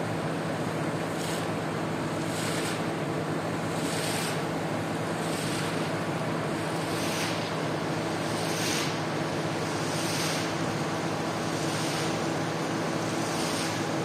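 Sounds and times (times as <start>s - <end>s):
steady machine hum: 0.0s - 14.0s.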